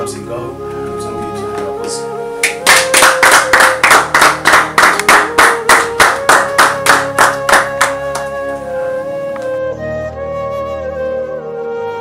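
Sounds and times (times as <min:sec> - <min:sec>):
soft background music: 0:00.0 - 0:12.0
rhythmic hand clapping: 0:02.4 - 0:08.5.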